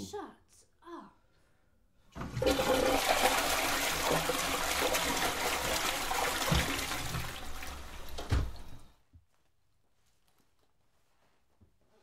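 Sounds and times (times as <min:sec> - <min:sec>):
toilet flushing: 0:02.1 - 0:08.9.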